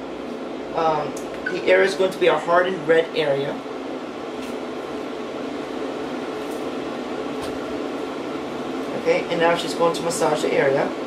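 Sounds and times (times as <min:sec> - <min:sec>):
cooling fan humming: 0:00.0 - 0:11.0.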